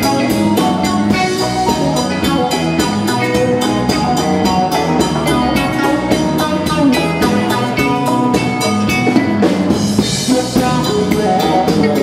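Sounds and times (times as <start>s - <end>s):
instrumental rock band playing: 0.0s - 12.0s.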